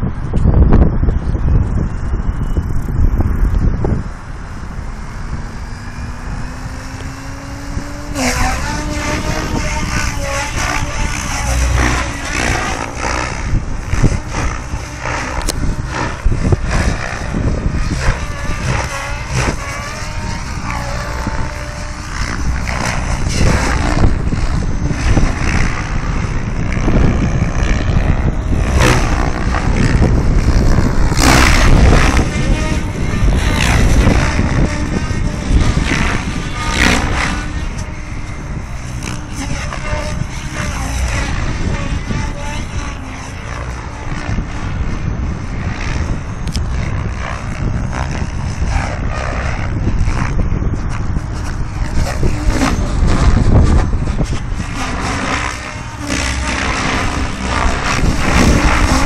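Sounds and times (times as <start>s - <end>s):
low microphone rumble: 0.0s - 59.0s
rc helicopter rotor whine: 0.0s - 59.0s.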